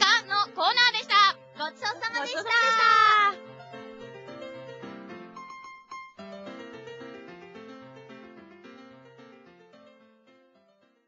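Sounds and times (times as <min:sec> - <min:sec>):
high drawn-out voice-like call: 0:02.1 - 0:03.4.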